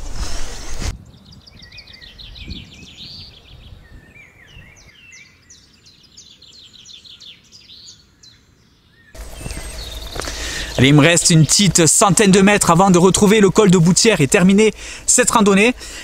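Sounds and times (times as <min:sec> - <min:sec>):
songbirds chirping and trilling: 0:00.9 - 0:16.0.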